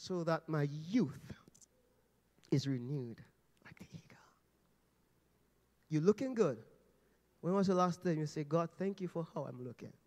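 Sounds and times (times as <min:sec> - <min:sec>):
man speaking over amplification: 0:07.4 - 0:10.0.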